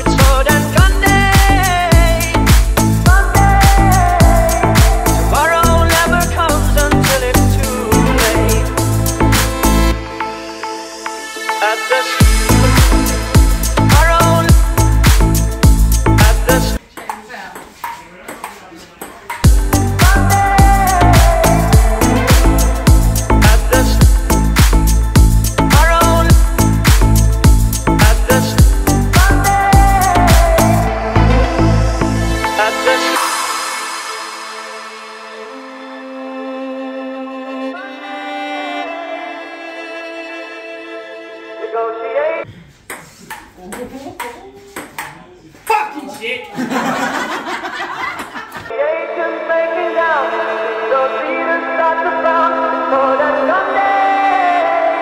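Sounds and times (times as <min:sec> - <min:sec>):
dance music with heavy beat: 0:00.0 - 0:09.9, 0:12.1 - 0:16.9, 0:19.4 - 0:35.5
ping pong ball hits: 0:16.9 - 0:19.6, 0:42.9 - 0:45.8.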